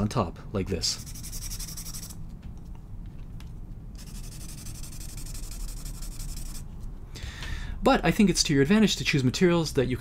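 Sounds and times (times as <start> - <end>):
pencil scribbling on paper: 1.0 - 2.2, 4.0 - 6.6.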